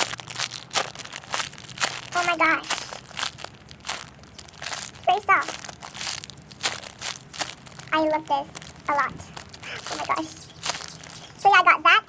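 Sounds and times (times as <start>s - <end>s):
plastic bag crinkling: 0.0s - 11.4s.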